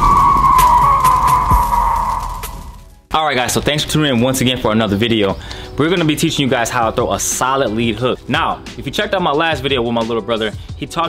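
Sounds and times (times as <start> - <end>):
long loud falling screech: 0.0 - 2.9
sharp hits: 0.0 - 3.1.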